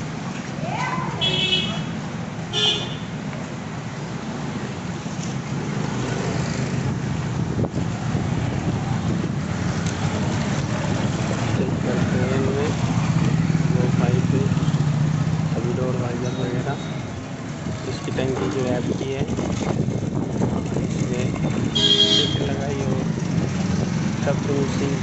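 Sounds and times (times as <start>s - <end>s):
traffic engine hum: 0.0s - 25.0s
car horn toots: 1.2s - 3.1s, 21.7s - 22.6s.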